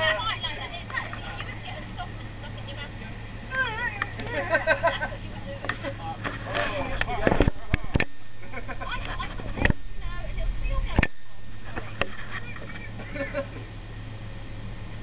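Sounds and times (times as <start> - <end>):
people talking indistinctly: 0.0 - 8.0
steady low hum: 0.0 - 15.0.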